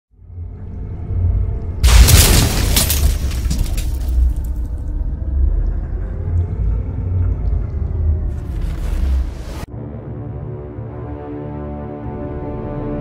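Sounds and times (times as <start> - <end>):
deep rumbling drone: 0.1 - 9.7
loud boom with crashing hit: 1.8 - 3.6.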